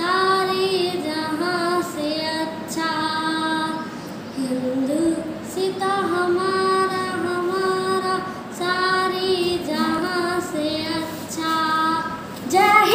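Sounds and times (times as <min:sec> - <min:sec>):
girl singing solo: 0:09.5 - 0:12.9.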